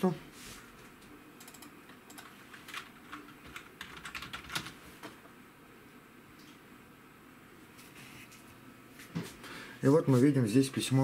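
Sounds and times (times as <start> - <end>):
typing on computer keyboard: 1.4 - 4.8.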